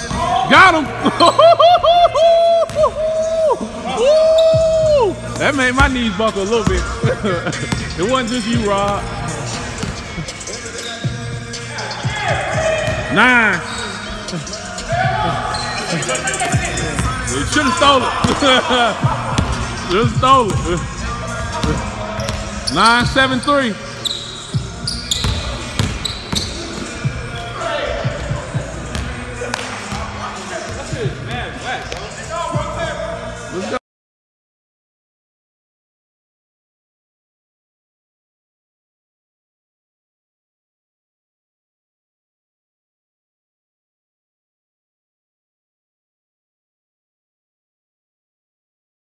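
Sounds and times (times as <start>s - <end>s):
voices: 0.0s - 24.0s
music: 0.0s - 33.8s.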